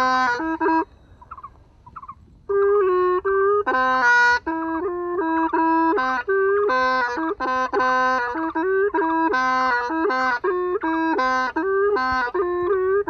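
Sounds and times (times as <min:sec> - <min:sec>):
bamboo reed pipe melody: 0:00.0 - 0:13.0.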